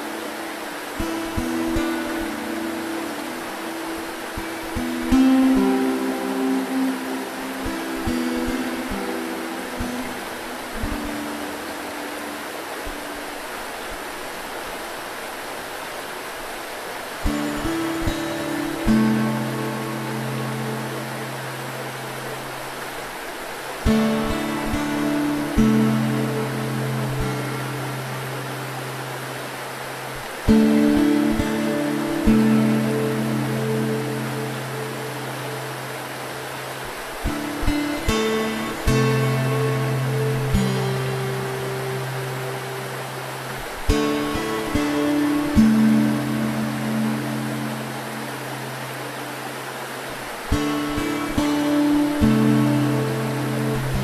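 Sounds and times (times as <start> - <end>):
acoustic guitar chords: 0.0 - 12.4, 17.2 - 22.2, 23.8 - 29.0, 30.4 - 35.8, 37.2 - 48.8, 50.5 - 54.0
river rushing: 0.0 - 54.0.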